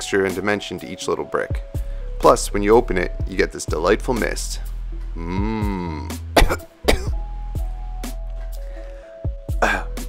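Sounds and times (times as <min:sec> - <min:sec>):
background music: 0:00.0 - 0:10.0
man coughing: 0:05.3 - 0:07.2, 0:09.6 - 0:10.0.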